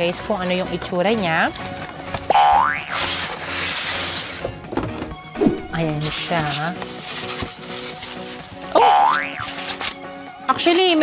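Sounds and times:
cardboard box sliding open: 0:03.0 - 0:04.5.

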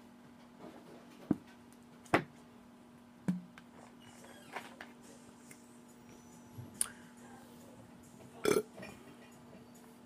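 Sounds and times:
woman burping: 0:08.4 - 0:08.7.

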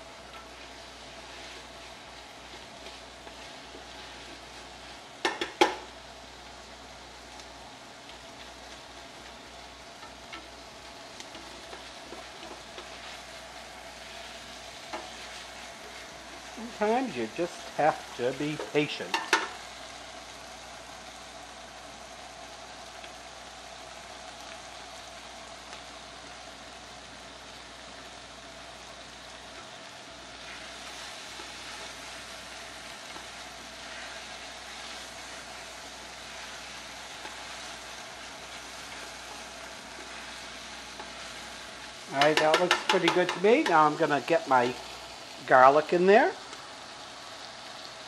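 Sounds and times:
food sizzling in a pot: 0:00.0 - 0:48.0
tongs stirring: 0:00.2 - 0:05.7, 0:30.4 - 0:44.8.

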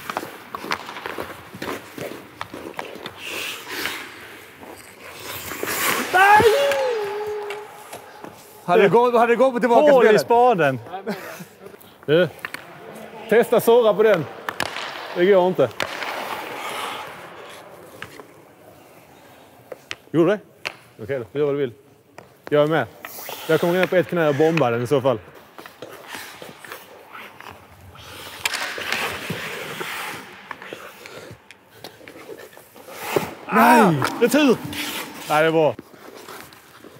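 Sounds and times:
hockey sticks clicking on puck: 0:00.0 - 0:08.5, 0:12.3 - 0:18.4, 0:19.6 - 0:21.0, 0:22.2 - 0:36.9
skate blades scraping ice: 0:00.0 - 0:08.9, 0:14.4 - 0:19.0, 0:23.0 - 0:36.9.

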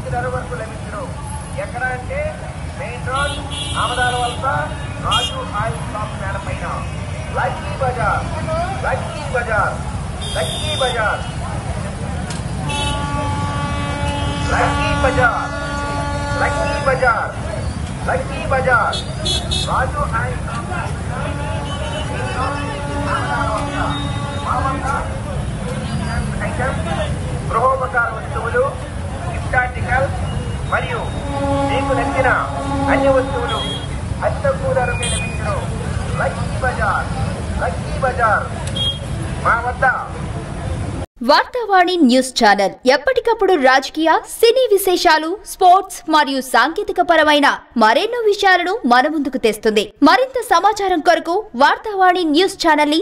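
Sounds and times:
motorcycle engines rumbling: 0:00.0 - 0:41.1
vehicle horn long note: 0:03.2 - 0:05.4, 0:12.6 - 0:17.0, 0:21.2 - 0:24.9, 0:31.0 - 0:34.0.

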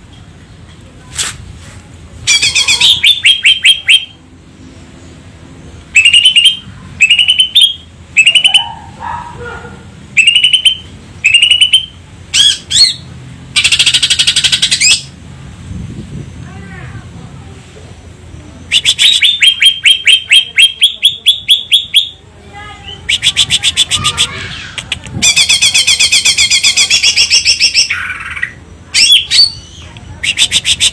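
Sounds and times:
bird singing: 0:02.3 - 0:08.7, 0:10.2 - 0:15.1.

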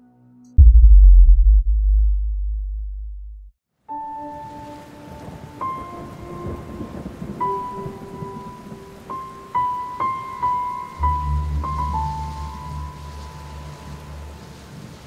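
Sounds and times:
slow sustained music notes: 0:03.9 - 0:15.0
steady rain hiss: 0:04.0 - 0:15.0.

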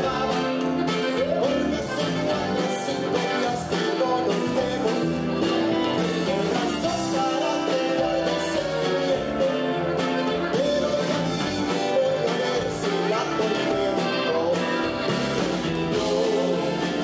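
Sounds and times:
bass: 0:00.0 - 0:17.0
button accordion: 0:00.0 - 0:17.0
drums: 0:00.0 - 0:17.0
guitar: 0:00.0 - 0:17.0
man singing lead vocal: 0:00.0 - 0:17.0.

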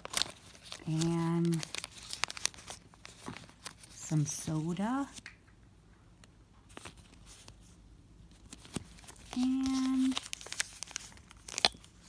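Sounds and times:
plastic wrapper crinkling: 0:00.0 - 0:05.4, 0:08.3 - 0:12.0.

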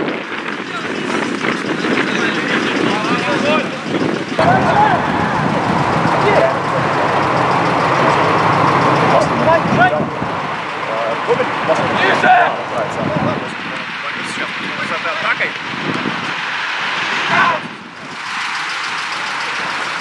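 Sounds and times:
steady rushing noise: 0:00.0 - 0:20.0
players shouting: 0:02.0 - 0:15.6, 0:16.3 - 0:17.8.

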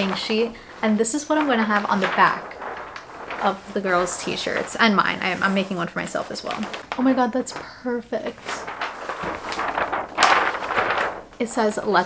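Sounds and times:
plastic film crinkling: 0:00.0 - 0:12.0.

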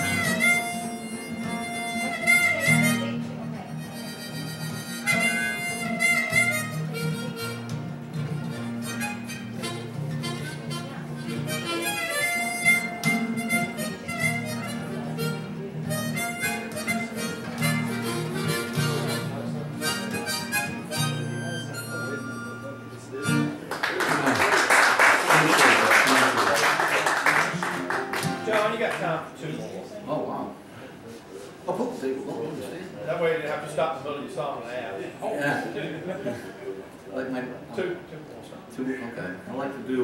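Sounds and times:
harmonica long notes: 0:00.0 - 0:23.7
guitar playing: 0:00.0 - 0:23.8, 0:26.4 - 0:29.6
applause: 0:23.7 - 0:29.0.

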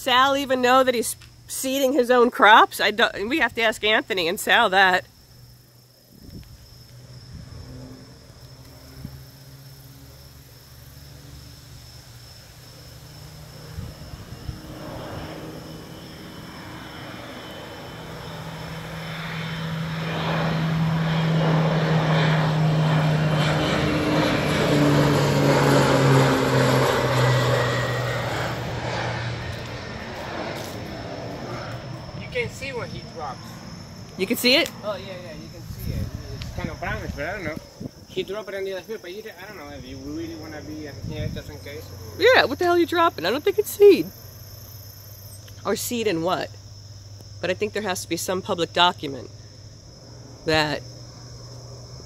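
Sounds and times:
propeller plane flying overhead: 0:00.0 - 0:52.0.

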